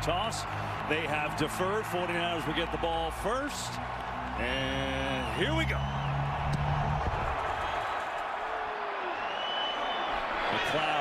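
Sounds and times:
stadium crowd cheering: 0.0 - 11.0.

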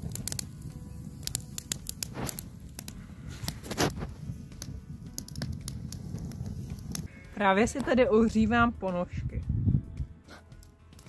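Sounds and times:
campfire crackling and popping: 0.0 - 9.7, 10.3 - 11.0.

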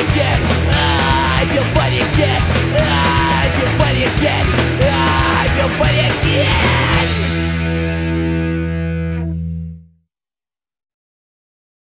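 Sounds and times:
punk rock band playing: 0.0 - 9.8.

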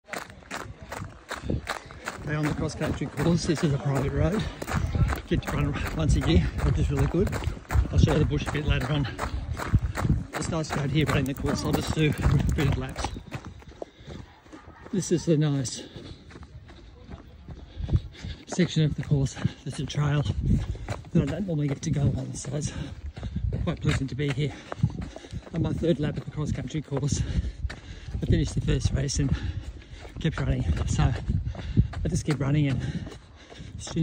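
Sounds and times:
running footsteps on gravel: 0.0 - 34.0.

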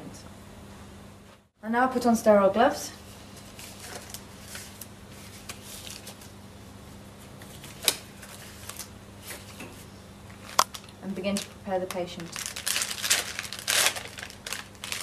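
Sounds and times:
low steady hum: 0.0 - 15.0
faint rustling of wrappings: 3.1 - 6.4, 10.4 - 15.0.

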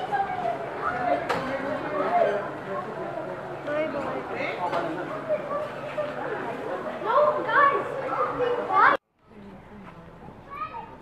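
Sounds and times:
children talking and calling out: 0.0 - 4.0, 5.0 - 9.0, 10.4 - 11.0.

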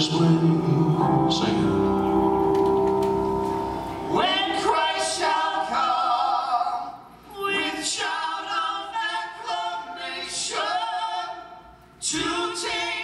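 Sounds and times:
voices singing a gospel hymn: 0.0 - 1.9, 4.0 - 13.0.

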